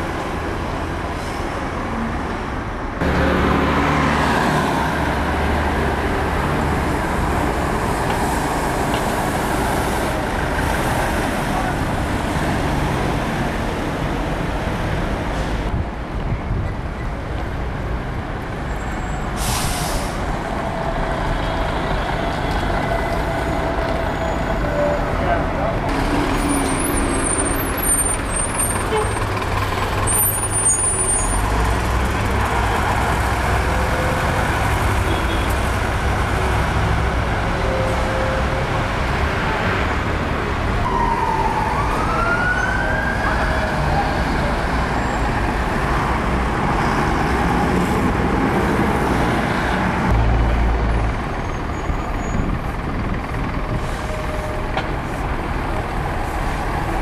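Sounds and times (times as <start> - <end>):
diesel bus engine rumble: 0.0 - 40.9, 43.2 - 57.0
air brake hiss: 19.3 - 20.3.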